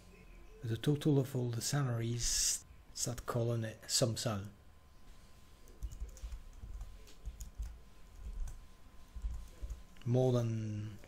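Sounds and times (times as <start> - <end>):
typing on computer keyboard: 5.7 - 7.8.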